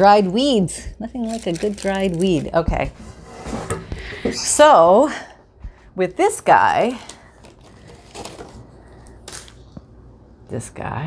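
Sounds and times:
paper rustling: 0:07.1 - 0:09.7.

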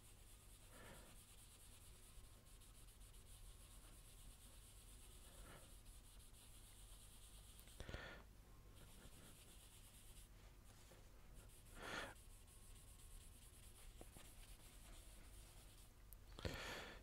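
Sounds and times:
graphite rubbing on paper: 0:00.0 - 0:07.9, 0:08.8 - 0:15.9.

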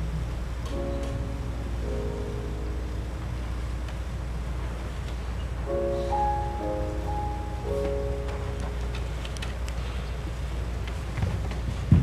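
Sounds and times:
low steady rumble: 0:00.0 - 0:12.0
faint clicks and rustles: 0:07.9 - 0:12.0.

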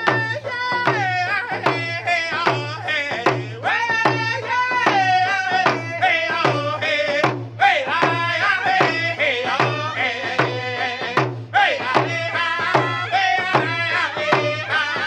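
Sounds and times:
frame drums beaten steadily: 0:00.0 - 0:15.0
people singing in high voices: 0:00.0 - 0:15.0.

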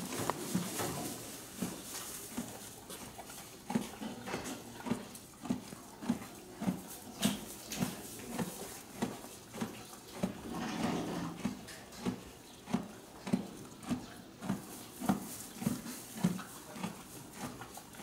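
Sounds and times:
horse chewing hay: 0:00.0 - 0:18.0.

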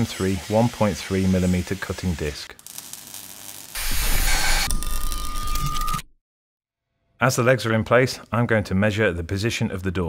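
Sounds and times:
angle grinder cutting steel: 0:03.8 - 0:05.8.

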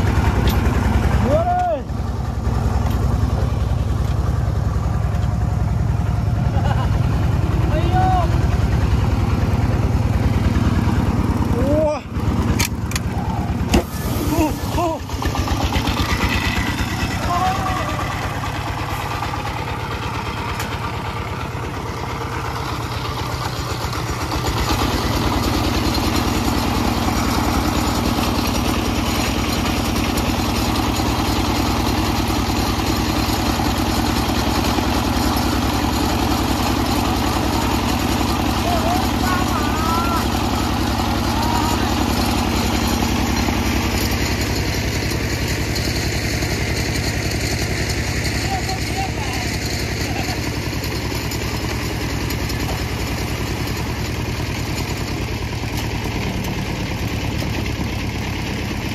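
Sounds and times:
diesel engine chugging: 0:00.0 - 0:58.9.

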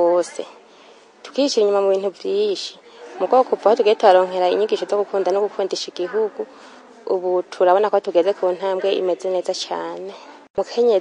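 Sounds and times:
woman speaking: 0:00.0 - 0:00.6, 0:01.2 - 0:11.0
faint background hiss: 0:00.0 - 0:11.0.

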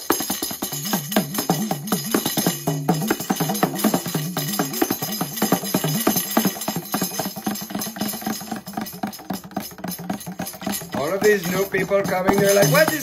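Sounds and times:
beads rattling in ocean drum: 0:00.0 - 0:13.0.

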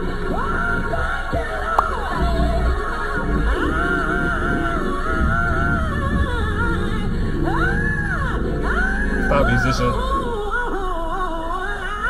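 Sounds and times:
woman singing gospel: 0:00.0 - 0:12.0
band with organ: 0:09.2 - 0:10.1.

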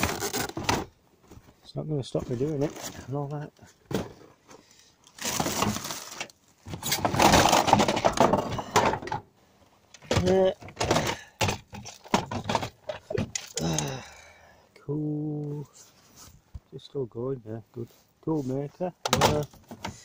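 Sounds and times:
plastic toys clattering: 0:00.0 - 0:01.0, 0:02.2 - 0:09.3, 0:09.9 - 0:14.0, 0:19.0 - 0:20.0
plastic wrapping rustling: 0:00.0 - 0:01.6, 0:02.2 - 0:04.2, 0:05.0 - 0:08.4.

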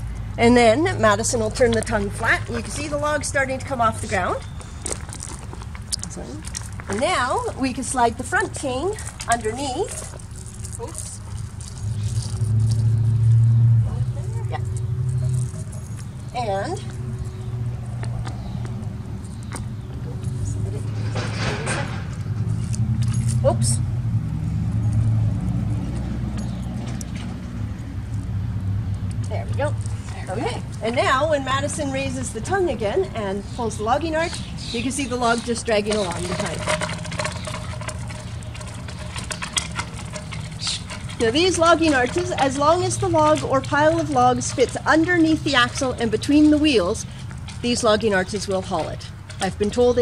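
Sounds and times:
wooden wheels crunching over gravel: 0:00.5 - 0:17.3, 0:33.4 - 0:50.0
log dragging on gravel: 0:01.4 - 0:13.8, 0:33.5 - 0:50.0
light metal chain clinking: 0:22.6 - 0:23.4.

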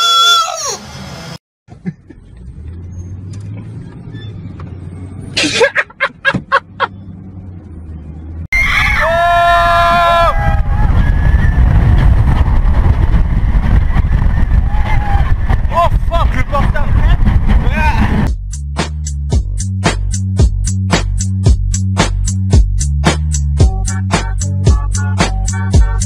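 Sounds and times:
riders screaming: 0:08.6 - 0:11.7
wind rush and rumble: 0:08.6 - 0:18.3
low hum: 0:10.3 - 0:18.3.

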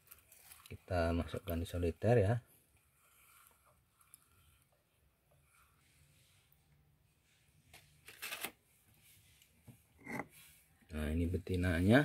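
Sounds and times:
rustling handling noises: 0:00.0 - 0:04.7, 0:07.2 - 0:10.8.

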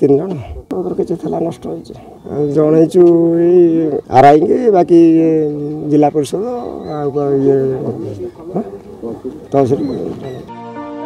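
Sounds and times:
man speaking into microphone: 0:00.0 - 0:10.5.

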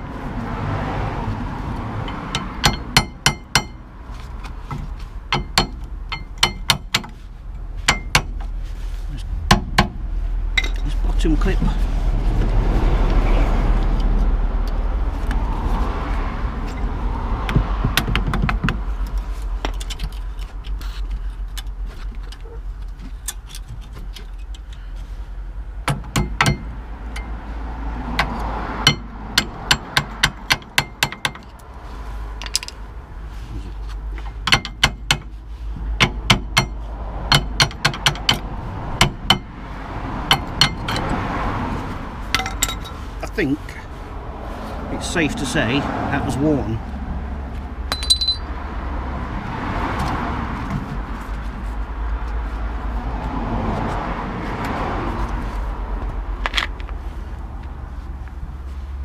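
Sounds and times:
metal tools clinking on metal: 0:10.6 - 0:11.0, 0:32.4 - 0:32.8, 0:42.3 - 0:43.0, 0:47.9 - 0:48.6.

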